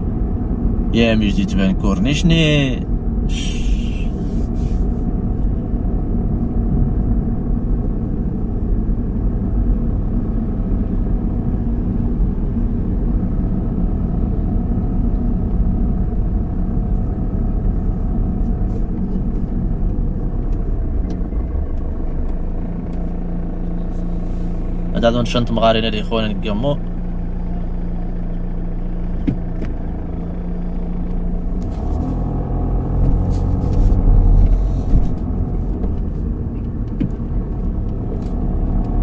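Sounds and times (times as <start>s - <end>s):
car engine and road noise: 0.0s - 39.0s.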